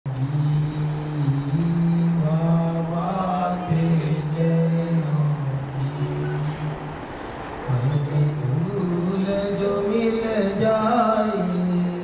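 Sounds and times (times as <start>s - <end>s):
higher voice singing: 0.1s - 7.0s, 7.6s - 12.0s.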